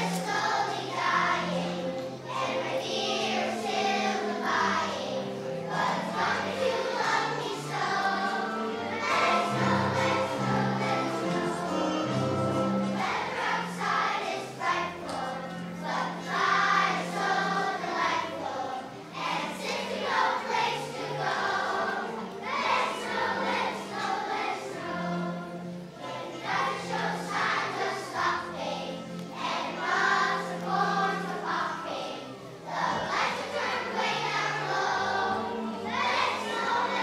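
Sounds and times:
children's choir singing: 0.0 - 37.0
sustained instrumental accompaniment: 0.0 - 37.0.

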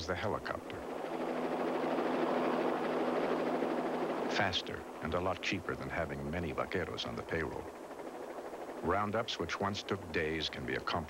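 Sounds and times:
helicopter rotor and engine drone: 0.0 - 11.0.

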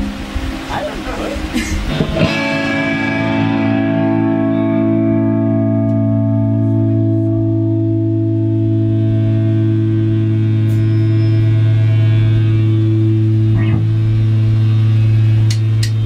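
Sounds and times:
amp hum: 0.0 - 16.0
guitar amplifier drone: 0.0 - 16.0
drumstick clicks: 15.5 - 16.0.

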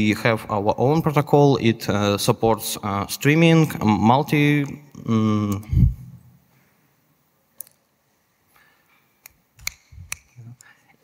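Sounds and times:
person speaking: 0.0 - 6.3
low hum: 5.6 - 6.4
sharp clicks: 9.2 - 10.7.

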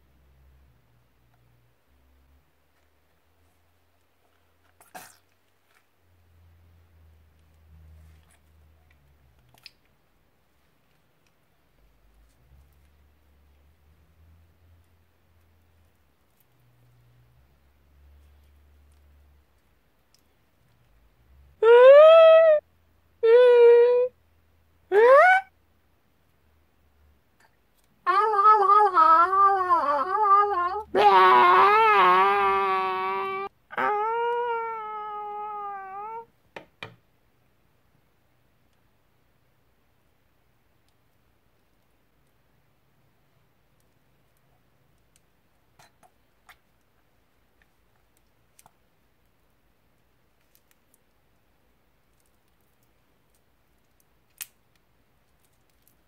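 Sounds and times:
cartoon wailing cries: 21.6 - 22.6, 24.9 - 25.5, 28.1 - 36.3.

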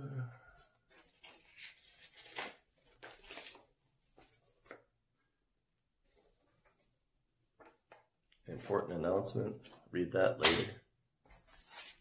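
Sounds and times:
paper rustling: 0.8 - 4.9, 11.3 - 12.0.

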